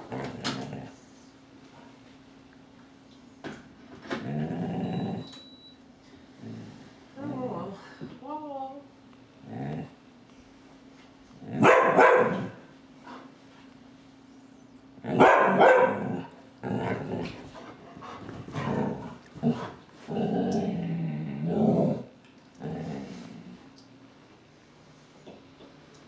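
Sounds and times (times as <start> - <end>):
puppy barking: 11.6 - 12.6, 15.1 - 16.1.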